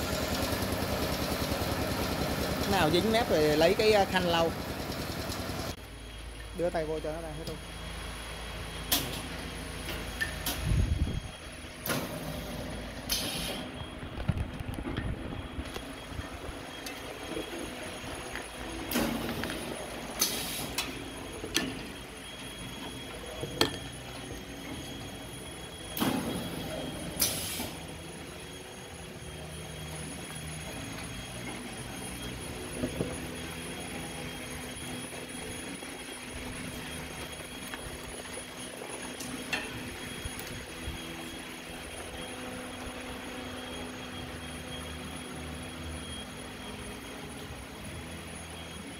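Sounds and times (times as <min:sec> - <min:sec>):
filling machine humming: 0:00.0 - 0:48.9
short air hisses: 0:13.1 - 0:13.7, 0:27.2 - 0:27.7.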